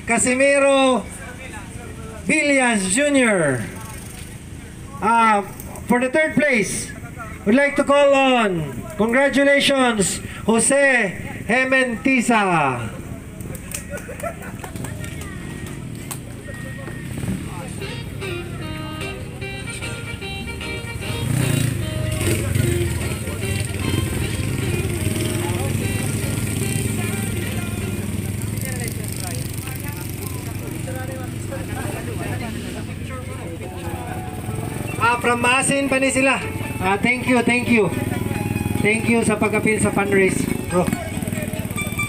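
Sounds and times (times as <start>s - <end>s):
crowd chatter: 0.0s - 42.0s
motorcycle engines running: 0.0s - 42.0s
background music: 17.8s - 28.2s, 33.6s - 42.0s.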